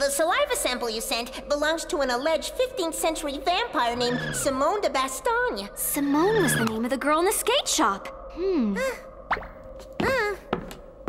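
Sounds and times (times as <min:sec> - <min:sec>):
faint steady background tone: 0:00.0 - 0:11.0
footsteps on wooden floor: 0:09.8 - 0:11.0.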